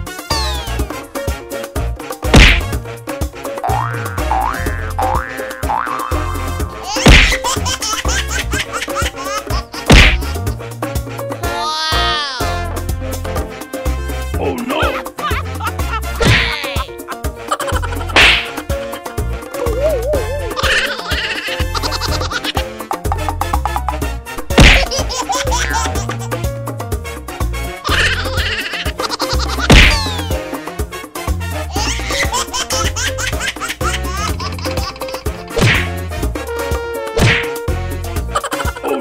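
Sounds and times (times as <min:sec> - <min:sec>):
upbeat background music: 0:00.0 - 0:39.0
whip-crack sound effect: 0:02.3 - 0:02.8, 0:07.0 - 0:07.5, 0:09.9 - 0:10.3, 0:16.2 - 0:16.5, 0:18.2 - 0:18.6, 0:24.5 - 0:25.0, 0:29.7 - 0:30.1, 0:35.6 - 0:36.0, 0:37.2 - 0:37.6
giggling laughter effect: 0:14.7 - 0:22.6, 0:24.8 - 0:26.4, 0:27.8 - 0:30.4, 0:31.7 - 0:35.6, 0:38.3 - 0:39.0
wobbling tone: 0:19.6 - 0:20.6.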